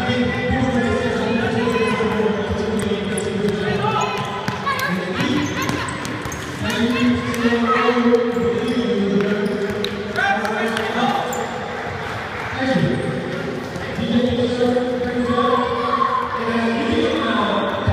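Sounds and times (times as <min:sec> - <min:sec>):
echoing overlapping voices: 0:00.0 - 0:17.9
basketball bouncing on gym floor: 0:03.1 - 0:07.4.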